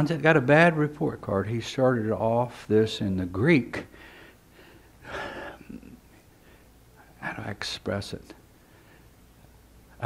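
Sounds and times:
man breathing: 3.9 - 5.7, 6.4 - 6.8, 8.6 - 9.2.

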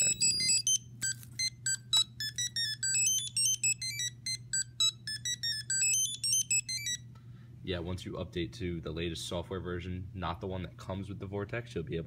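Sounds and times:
drone startup tune of electronic beeps: 0.0 - 7.0.

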